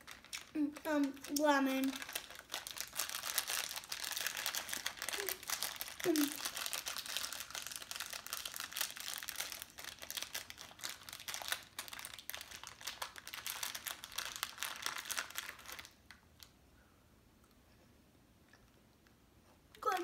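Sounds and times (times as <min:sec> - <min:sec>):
plastic candy bag crinkling: 0:00.0 - 0:16.6, 0:19.8 - 0:20.0.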